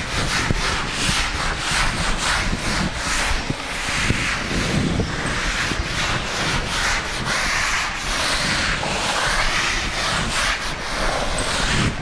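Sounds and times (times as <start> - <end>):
rubbing on a hard surface: 0.0 - 12.0.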